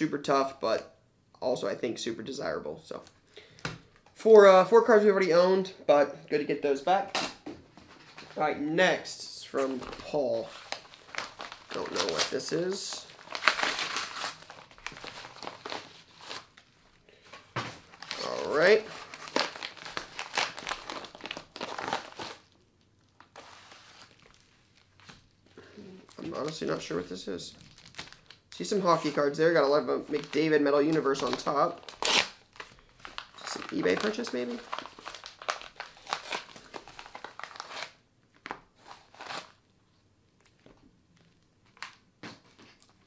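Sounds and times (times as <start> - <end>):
paper mailer crinkling and rustling: 27.6 - 39.4.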